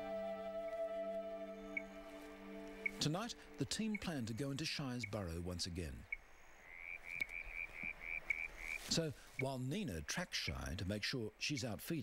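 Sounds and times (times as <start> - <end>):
faint background hiss: 0.0 - 12.0
frog calling: 1.6 - 2.0, 6.0 - 9.0.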